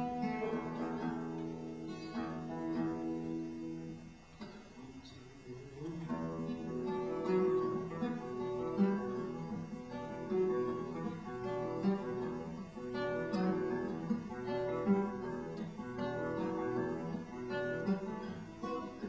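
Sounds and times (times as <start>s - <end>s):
acoustic guitar strumming: 0.0s - 19.0s.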